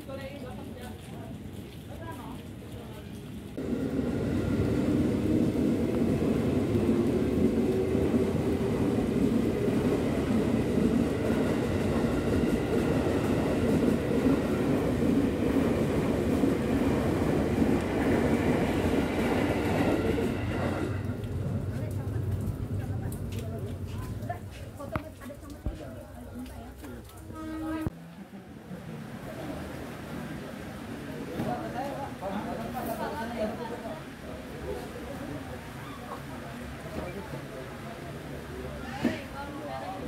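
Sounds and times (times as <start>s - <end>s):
voices: 17.5s - 40.0s.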